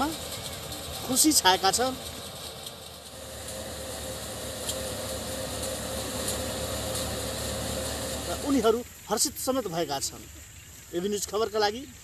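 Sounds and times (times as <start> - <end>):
thresher machine hum and whine: 0.0 - 8.8.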